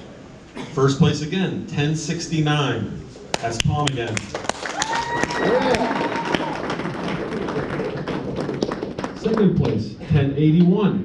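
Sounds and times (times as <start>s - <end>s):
audience applauding: 3.3s - 9.8s.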